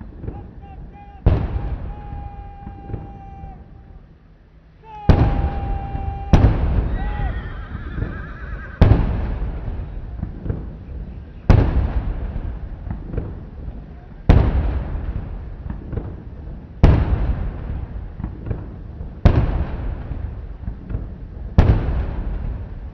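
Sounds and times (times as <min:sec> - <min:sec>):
artillery gun booms: 0:00.0 - 0:03.6, 0:05.0 - 0:07.3, 0:08.8 - 0:22.9
rolling echo: 0:00.0 - 0:22.9
drawn-out voice calls: 0:00.2 - 0:08.8.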